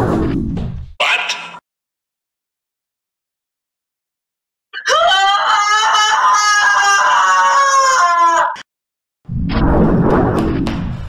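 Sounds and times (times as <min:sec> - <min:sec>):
loud high-pitched scream: 0:04.8 - 0:08.7.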